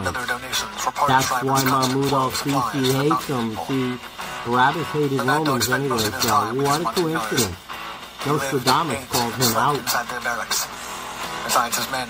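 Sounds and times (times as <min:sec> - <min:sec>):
person narrating: 0:00.0 - 0:07.6, 0:08.2 - 0:10.9
background music: 0:00.0 - 0:12.0.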